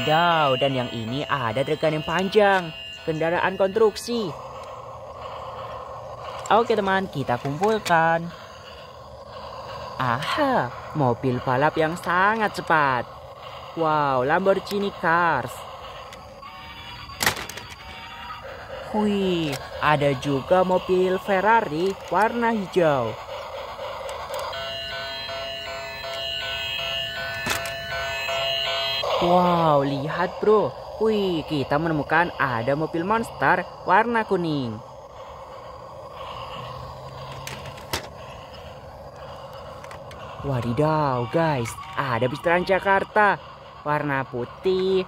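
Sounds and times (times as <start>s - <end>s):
toy train whirring: 0.0s - 45.0s.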